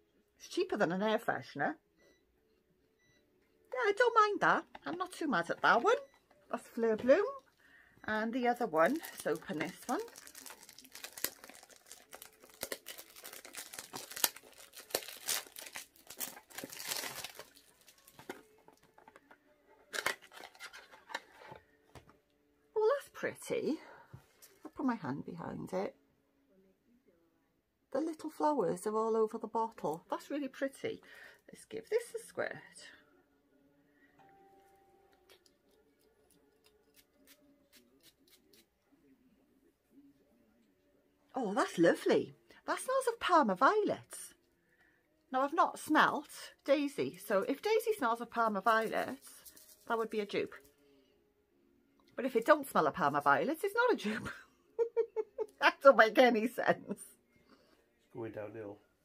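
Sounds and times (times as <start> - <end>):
packaging crinkling and tearing: 8.8 - 18.8, 19.9 - 21.2.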